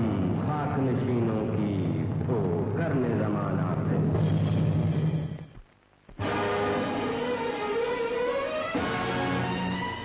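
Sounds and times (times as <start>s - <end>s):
orchestral film music: 6.2s - 10.0s.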